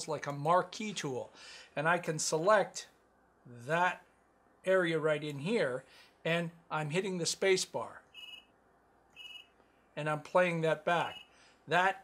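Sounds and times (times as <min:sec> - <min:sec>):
cell phone ringing: 0:08.2 - 0:08.6, 0:09.2 - 0:09.6, 0:11.0 - 0:11.3.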